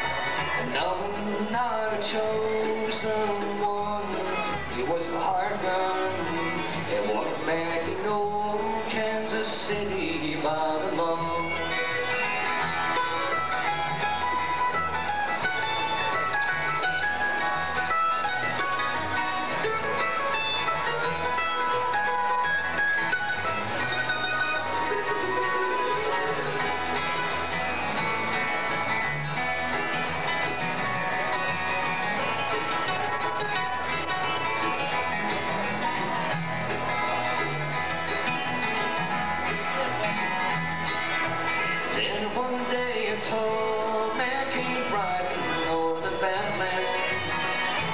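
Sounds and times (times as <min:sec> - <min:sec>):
acoustic guitars: 0:00.0 - 0:47.9
fiddle: 0:00.0 - 0:47.9
mandolin: 0:00.0 - 0:47.9
upright bass: 0:00.0 - 0:47.9.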